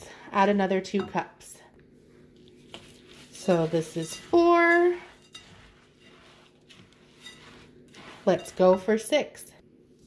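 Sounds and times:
seed rustling in a bowl: 2.6 - 9.1.

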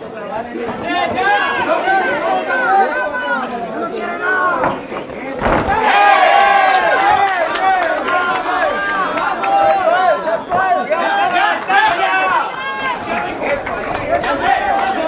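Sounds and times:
crowd shouting: 0.0 - 15.0.

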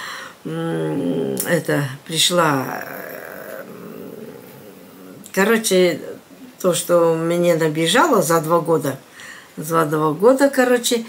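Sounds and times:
woman's creaky throaty murmur: 2.4 - 5.4.

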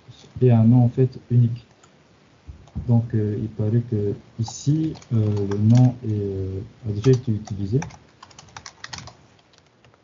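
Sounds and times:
typing on computer keyboard: 4.5 - 6.2, 7.0 - 9.7.

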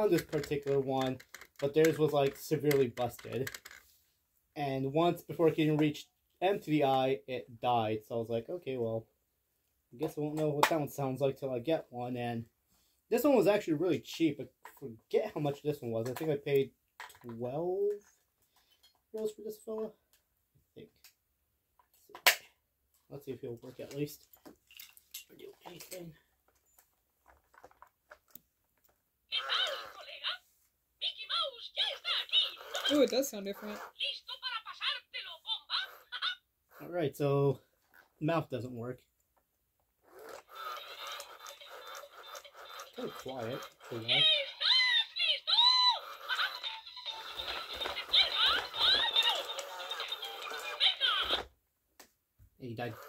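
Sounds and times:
toy talking in high voice: 29.3 - 36.5, 40.4 - 51.5.

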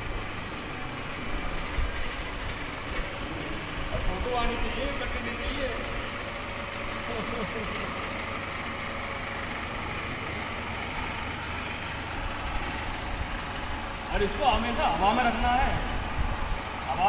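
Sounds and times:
hoist motors humming: 0.0 - 17.0.

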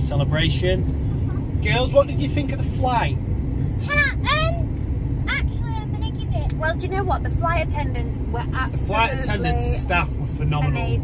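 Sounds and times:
car cabin road noise: 0.0 - 11.0
girl exclaiming: 3.8 - 4.7.

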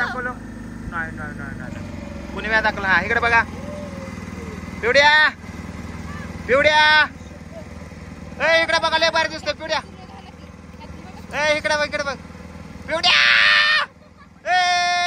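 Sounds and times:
boat engine humming: 0.0 - 15.0
drawn-out voice calls: 0.0 - 15.0.

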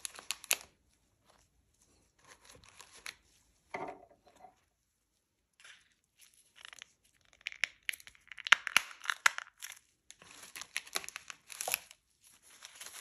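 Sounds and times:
packaging crinkling: 0.0 - 0.8, 6.3 - 13.0.

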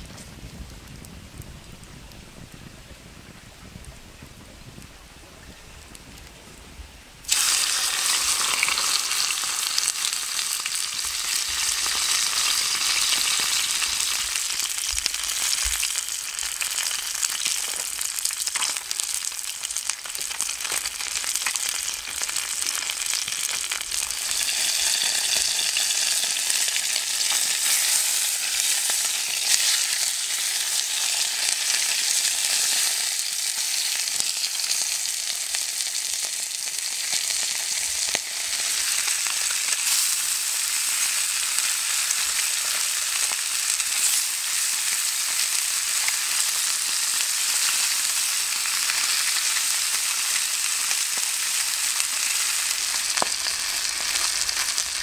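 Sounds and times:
faint crackles: 0.0 - 10.2
fish sizzling in a pan: 7.2 - 55.0.

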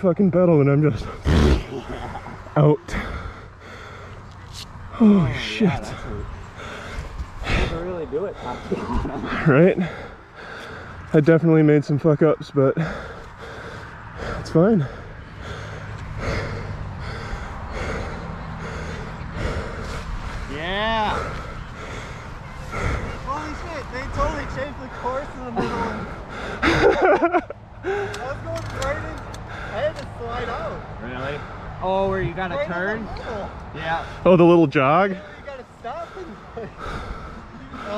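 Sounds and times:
indistinct conversation: 0.0 - 37.9
heavy breathing: 0.8 - 11.2, 12.7 - 32.1, 33.0 - 34.4, 35.0 - 37.9
steady low rumble: 0.8 - 11.2.

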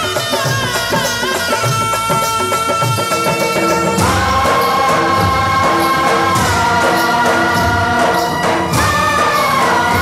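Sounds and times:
instrumental backing music: 0.0 - 10.0
chorus singing: 2.8 - 10.0.

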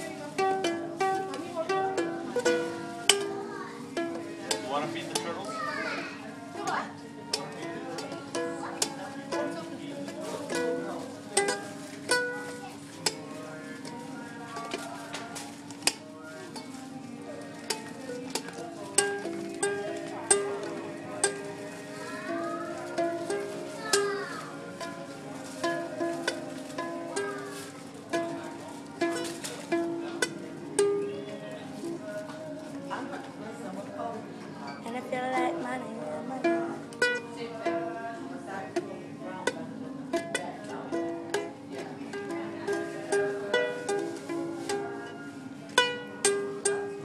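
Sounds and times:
ukulele plucking and strumming: 0.0 - 5.6, 6.4 - 13.2, 13.8 - 33.8, 34.8 - 38.0, 38.7 - 47.0.

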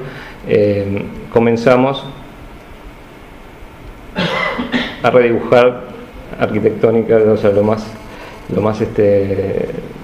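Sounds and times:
room hum: 0.0 - 10.0
person coughing: 4.2 - 5.0.

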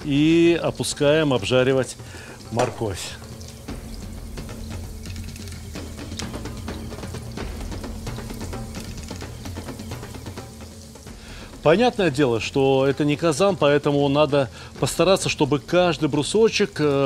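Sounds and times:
background music: 0.0 - 17.0
vegetables frying in hot oil: 0.1 - 17.0
oil crackling and spitting: 0.3 - 17.0.

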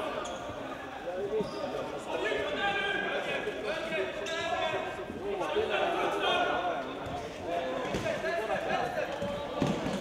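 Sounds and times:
players calling in echoing hall: 0.0 - 10.0.

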